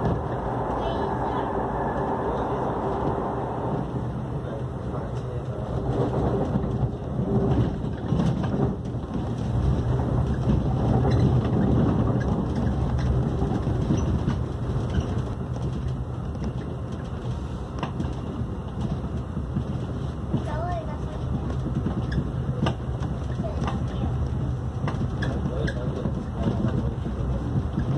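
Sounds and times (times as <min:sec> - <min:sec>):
train hum: 0:00.0 - 0:27.9
train wheels rumbling on rail: 0:00.0 - 0:27.9.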